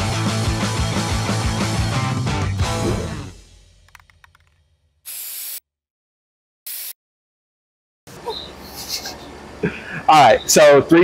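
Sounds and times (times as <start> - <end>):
spray paint can hissing: 5.1 - 5.6, 6.7 - 7.0.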